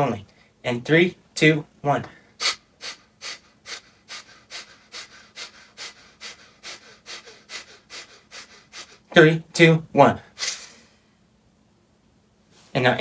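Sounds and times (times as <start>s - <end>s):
man exhaling forcefully through nose: 2.4s - 9.0s, 10.4s - 11.0s.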